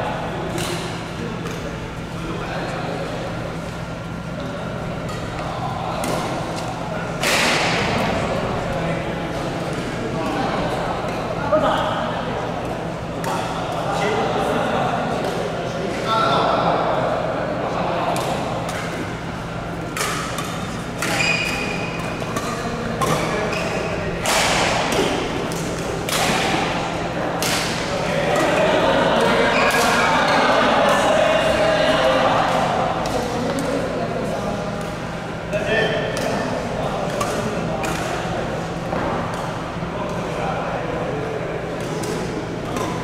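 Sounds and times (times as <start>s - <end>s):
racket hitting shuttlecock: 19.9s - 31.0s, 36.0s - 38.3s, 41.7s - 43.0s.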